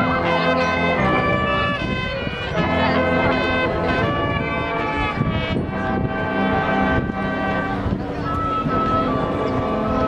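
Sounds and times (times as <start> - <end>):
marching band brass chords: 0.0 - 10.0.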